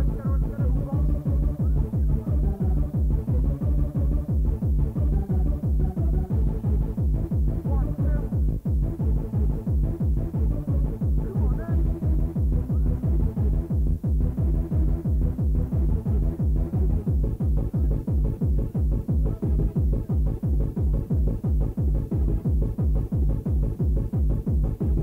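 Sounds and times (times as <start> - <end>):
electronic dance music: 0.0 - 25.0
heavy kick drum and bass: 0.0 - 25.0.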